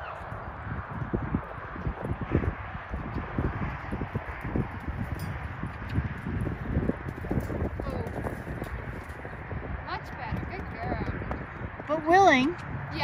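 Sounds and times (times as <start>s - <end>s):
horse hooves thudding in sand: 0.0s - 13.0s.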